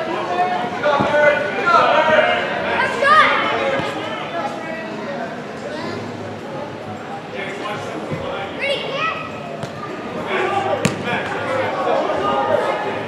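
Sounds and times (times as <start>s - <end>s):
voices of players and spectators: 0.0s - 13.0s
soccer ball struck hard: 10.8s - 11.4s.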